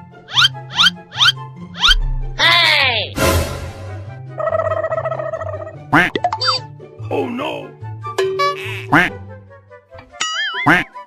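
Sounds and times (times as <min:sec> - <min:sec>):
bouncy background music: 0:00.0 - 0:11.0
wobbly quacking voice: 0:08.6 - 0:09.2, 0:10.7 - 0:11.0.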